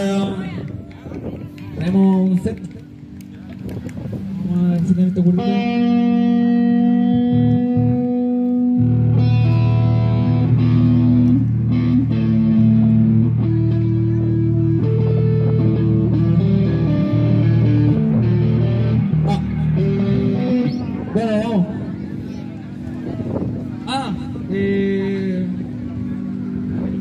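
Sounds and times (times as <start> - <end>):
loud electric guitar: 0.0 - 27.0.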